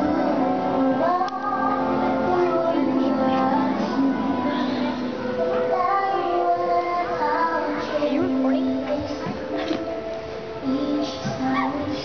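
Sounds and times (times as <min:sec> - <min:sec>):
children singing: 0:00.0 - 0:09.9
music: 0:00.0 - 0:12.0.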